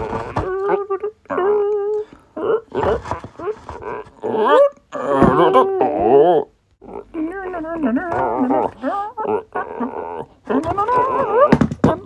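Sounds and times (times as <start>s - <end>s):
high-pitched vocal sounds: 0.0s - 12.0s.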